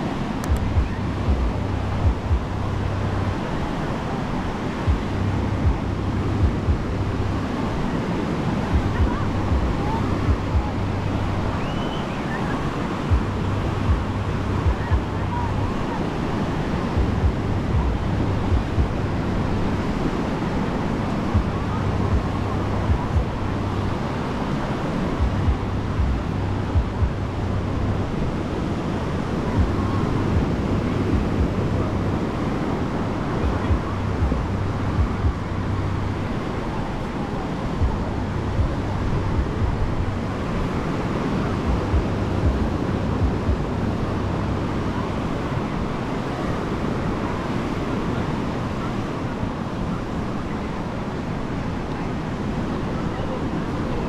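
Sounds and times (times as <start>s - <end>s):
indistinct chatter: 0.0s - 54.0s
surf breaking on beach: 0.0s - 54.0s
wind buffeting microphone: 0.0s - 54.0s.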